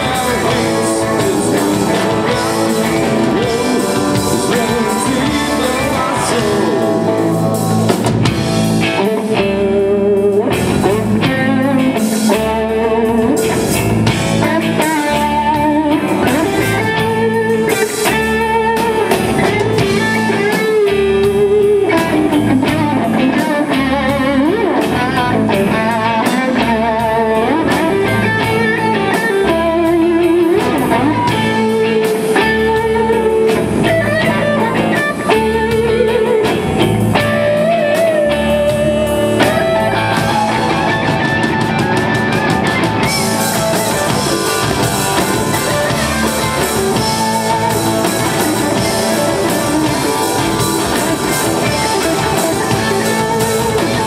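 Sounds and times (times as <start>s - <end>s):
lead electric guitar: 0.0s - 54.0s
rock band playing: 0.0s - 54.0s.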